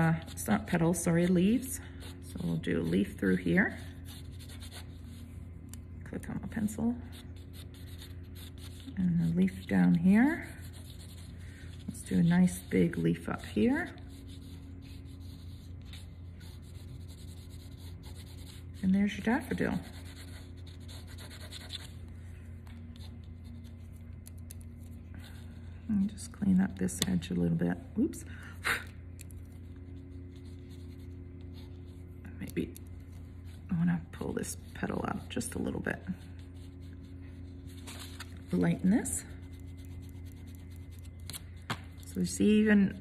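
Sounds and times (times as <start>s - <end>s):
eraser rubbing on paper: 0.0s - 5.3s, 7.0s - 21.9s, 36.2s - 41.2s
pencil scratching on paper: 0.0s - 5.3s, 7.0s - 21.9s, 29.9s - 32.0s, 36.2s - 41.2s
low steady hum: 0.0s - 43.0s.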